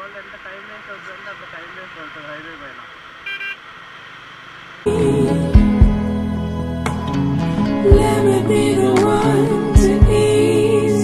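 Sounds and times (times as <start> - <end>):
faint road noise: 0.0 - 11.0
vehicle horn toot: 3.2 - 3.6
loud background music: 4.9 - 11.0.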